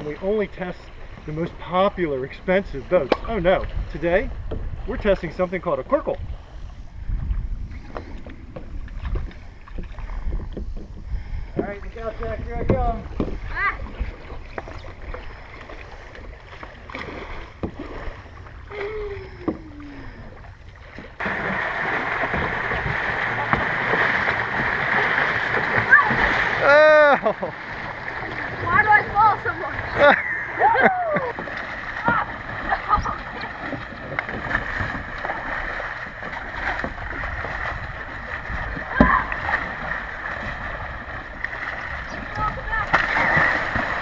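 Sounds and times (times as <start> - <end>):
water splashing: 0.0 - 6.6, 7.8 - 44.0
paddle knocking on hull: 3.0 - 5.1, 7.9 - 18.2, 20.9 - 29.8, 31.1 - 44.0.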